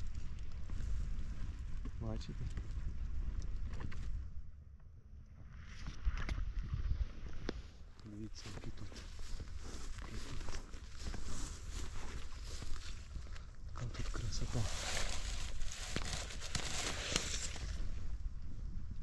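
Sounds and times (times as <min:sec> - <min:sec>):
berry picker raking bushes: 0:14.1 - 0:17.8.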